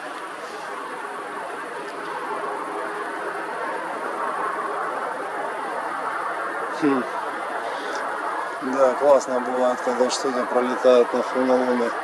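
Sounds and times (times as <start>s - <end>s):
passing cars: 0.0s - 12.0s.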